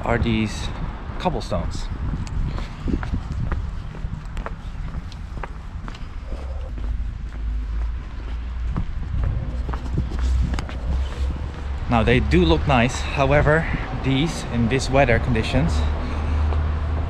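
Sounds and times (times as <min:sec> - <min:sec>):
low rumble: 0:01.9 - 0:14.0
footsteps on wet cobblestones: 0:02.6 - 0:06.1, 0:06.7 - 0:12.3.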